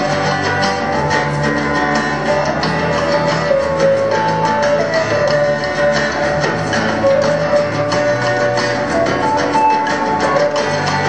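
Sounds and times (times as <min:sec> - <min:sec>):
guitars playing melody: 0:00.0 - 0:11.0
hand percussion beat: 0:00.0 - 0:11.0.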